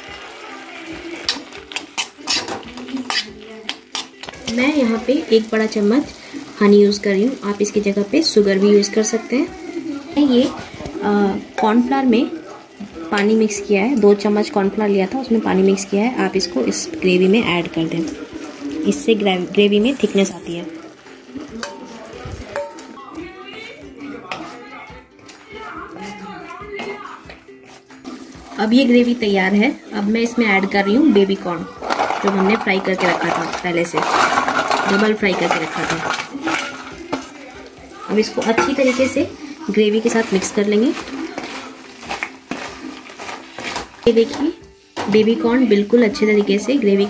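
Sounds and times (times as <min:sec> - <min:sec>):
wooden spatula stirring in a wok: 0:00.0 - 0:30.9, 0:31.8 - 0:47.0
spatula knocking and scraping pan: 0:31.8 - 0:37.4, 0:38.1 - 0:47.0.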